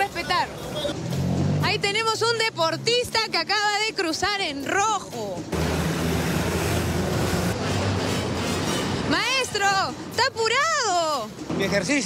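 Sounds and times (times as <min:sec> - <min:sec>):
traffic rushing noise: 0:00.0 - 0:12.0.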